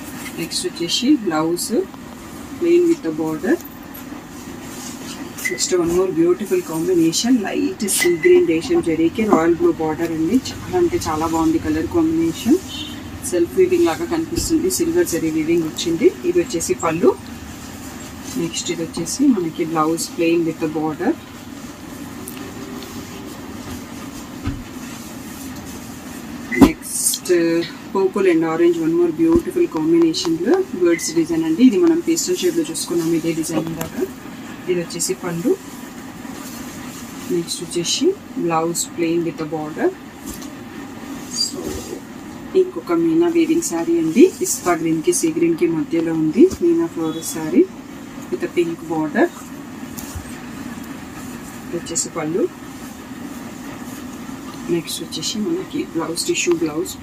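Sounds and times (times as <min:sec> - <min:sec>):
low machine hum: 0:00.0 - 0:57.0.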